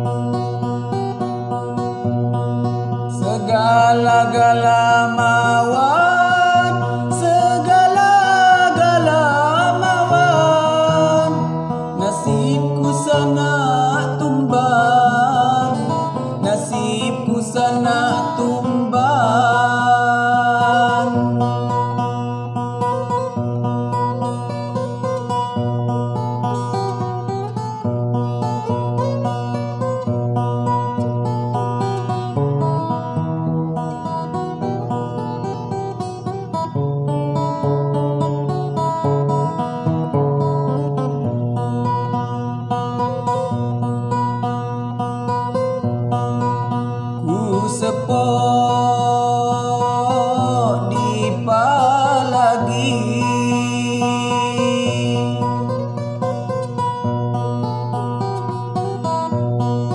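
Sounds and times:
guitar-led backing music: 0.0s - 59.9s
man singing: 3.1s - 23.2s, 47.2s - 56.7s.

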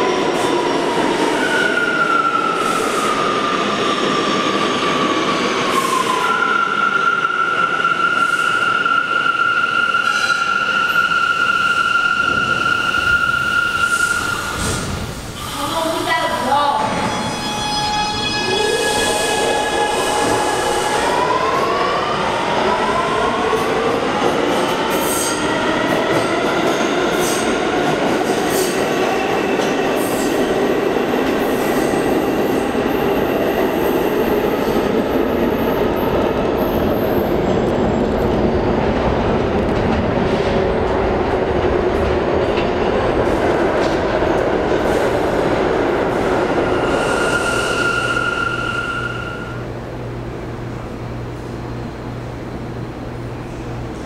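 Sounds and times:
subway train propulsion whine: 0.0s - 54.0s.

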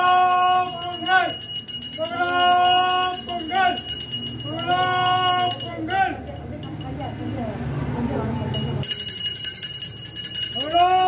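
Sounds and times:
small brass bell ringing rapidly: 0.0s - 7.6s, 8.3s - 11.0s.

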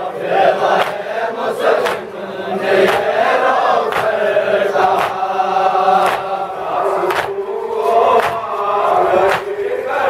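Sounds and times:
men chanting in unison: 0.0s - 10.0s
hands slapping on chests: 0.7s - 1.1s, 1.7s - 2.2s, 2.8s - 3.2s, 3.8s - 5.3s, 6.0s - 6.4s, 7.0s - 7.5s, 8.1s - 9.8s.

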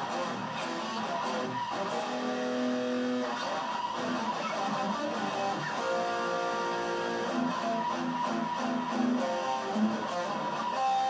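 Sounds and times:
electric guitar single notes: 0.0s - 11.0s.

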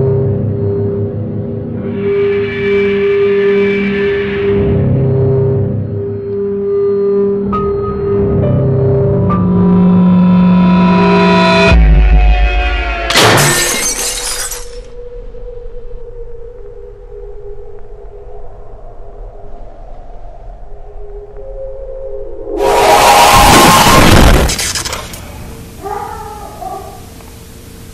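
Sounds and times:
glass shattering crash: 13.1s - 15.0s, 23.6s - 25.4s
animal-like cry: 25.8s - 27.1s.

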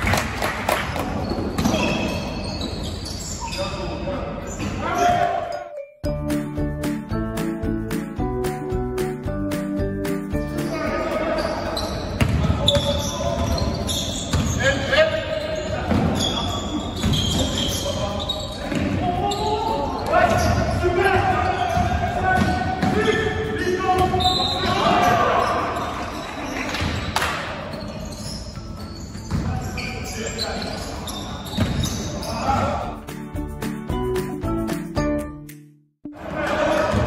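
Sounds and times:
players calling out: 10.5s - 26.7s.

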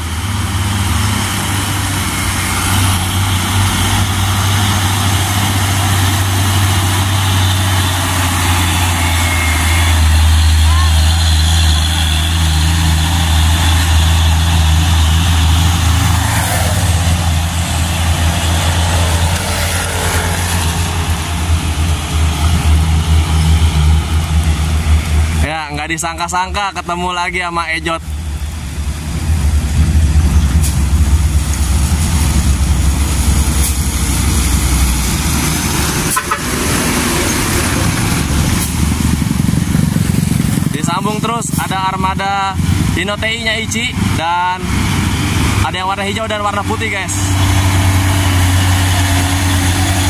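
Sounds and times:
diesel truck driving past: 0.0s - 50.0s.

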